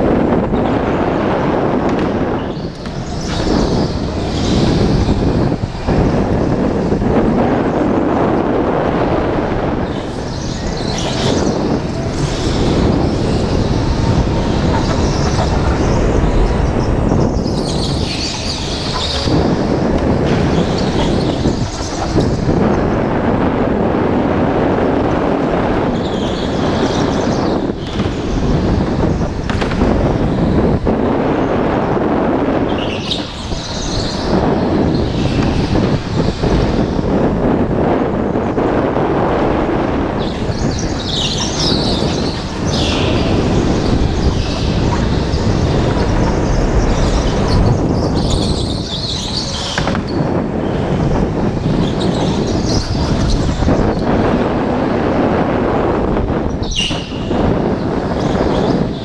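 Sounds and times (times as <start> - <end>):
go-kart motor and vibration noise: 0.0 - 59.0.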